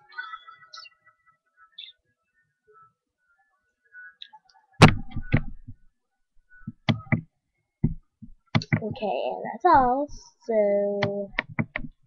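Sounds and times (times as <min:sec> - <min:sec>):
loud thump: 0:04.8 - 0:05.8.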